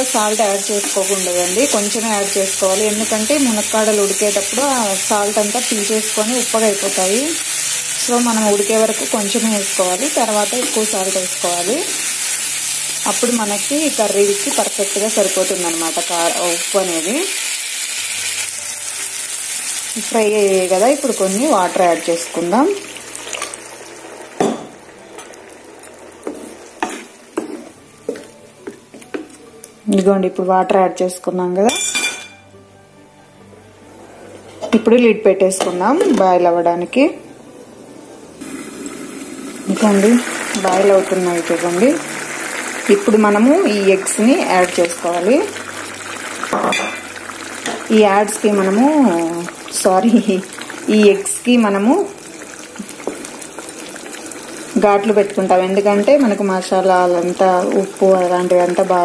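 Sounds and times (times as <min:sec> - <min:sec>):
curry sizzling: 0:00.0 - 0:30.3, 0:37.8 - 0:59.0.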